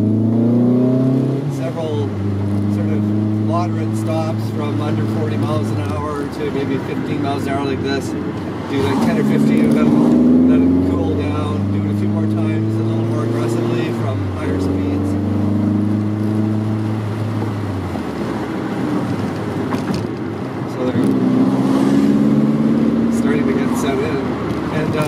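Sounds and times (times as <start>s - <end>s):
car engine revving: 0.0s - 25.0s
road noise: 0.0s - 25.0s.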